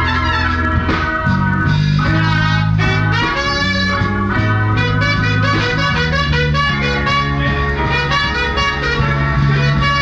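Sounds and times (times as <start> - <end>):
jazz band playing: 0.0 - 10.0
steady bass: 0.0 - 10.0
trumpet lead line: 0.0 - 10.0.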